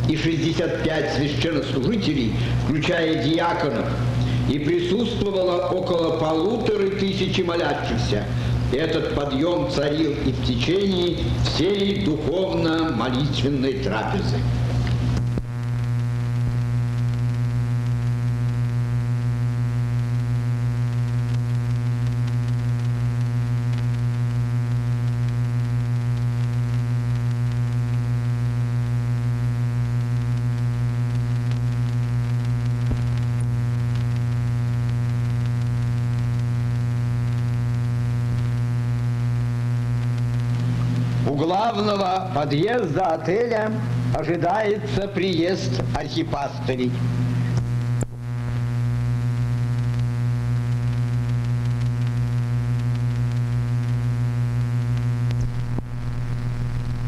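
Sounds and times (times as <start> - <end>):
low electrical hum: 0.0 - 57.0
person narrating: 0.1 - 14.5, 41.2 - 47.0.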